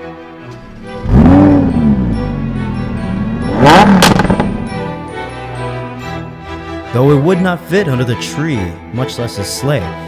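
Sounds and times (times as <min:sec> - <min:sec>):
car engine starting and idling: 0:00.4 - 0:06.9
engine throttle blip: 0:00.6 - 0:06.2.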